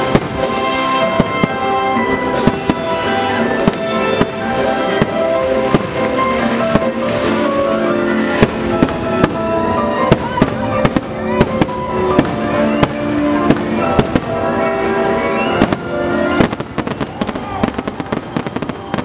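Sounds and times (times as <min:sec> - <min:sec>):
show music soundtrack: 0:00.0 - 0:18.9
fireworks bangs and crackles: 0:00.0 - 0:19.0.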